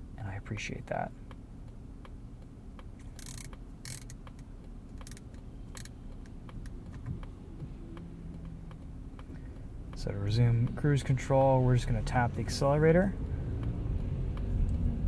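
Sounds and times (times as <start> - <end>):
car cabin low hum: 0.0 - 15.0.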